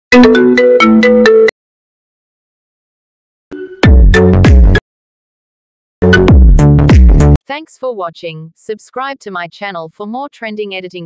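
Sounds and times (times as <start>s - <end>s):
ringtone melody: 0.1s - 1.6s, 3.5s - 4.8s.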